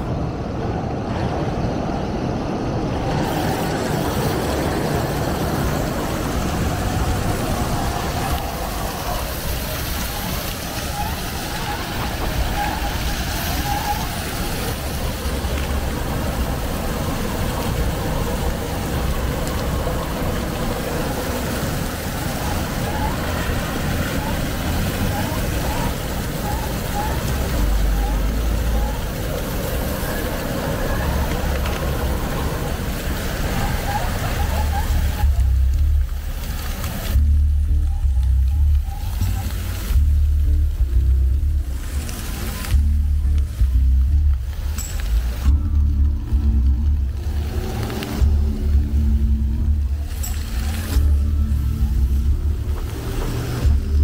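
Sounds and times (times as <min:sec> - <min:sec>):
fountains hissing and splashing: 0:00.0 - 0:54.0
road traffic rumble: 0:00.0 - 0:54.0
voices of passers-by: 0:00.0 - 0:54.0.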